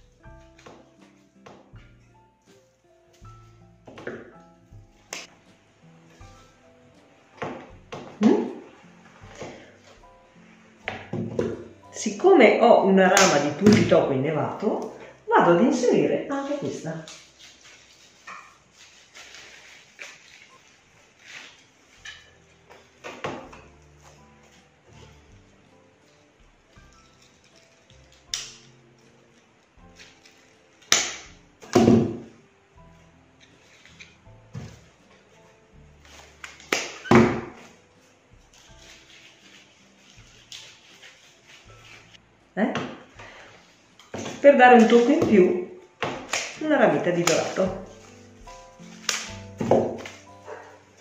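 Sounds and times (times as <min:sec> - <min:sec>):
soft background music: 0:00.0 - 0:51.0.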